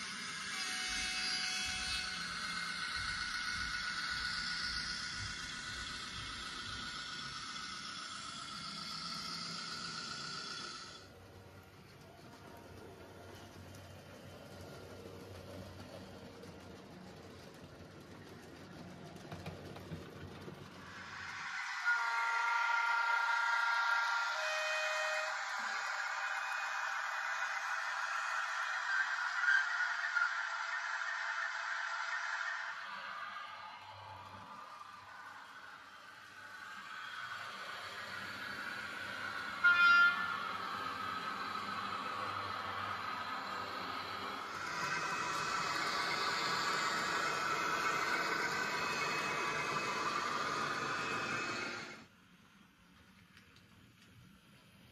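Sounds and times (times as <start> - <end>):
model train rumble: 0.0 - 54.9
train horn: 0.4 - 2.3, 21.6 - 27.2, 38.0 - 43.3.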